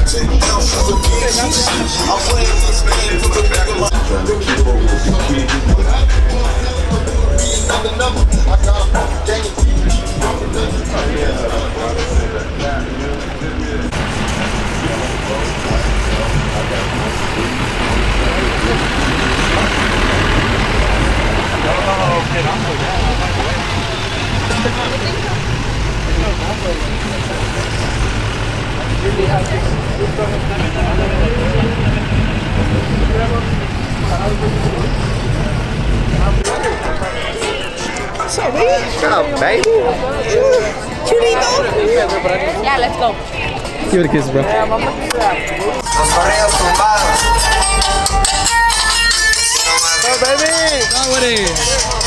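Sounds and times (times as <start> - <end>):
people talking: 0.0 - 52.0
truck engine running: 0.0 - 52.0.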